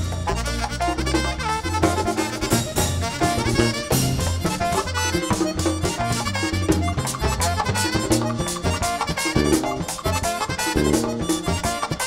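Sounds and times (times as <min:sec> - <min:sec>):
button accordion: 0:00.0 - 0:12.0
fast percussion beat: 0:00.0 - 0:12.0
repeating bass line: 0:00.0 - 0:12.0
saxophone: 0:00.0 - 0:12.0.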